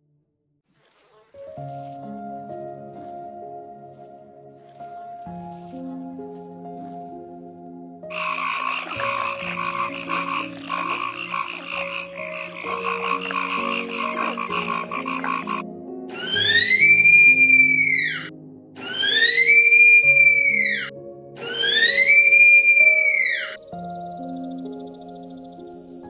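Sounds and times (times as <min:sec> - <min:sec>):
soft background music: 0:01.3 - 0:26.0
sloth high whistled calls: 0:08.1 - 0:23.6, 0:25.4 - 0:26.0
frog croaking chorus: 0:08.1 - 0:26.0.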